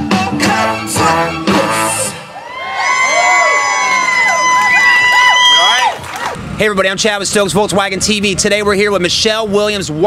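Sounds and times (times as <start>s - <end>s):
live rock band: 0.0s - 2.4s
crowd cheering and whooping: 2.0s - 6.4s
long high-pitched whoop: 2.3s - 6.2s.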